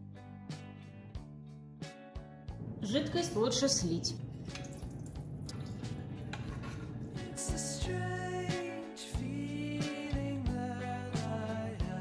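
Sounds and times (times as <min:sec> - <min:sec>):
background music: 0:00.0 - 0:12.0
liquid trickling and dripping: 0:04.1 - 0:07.2.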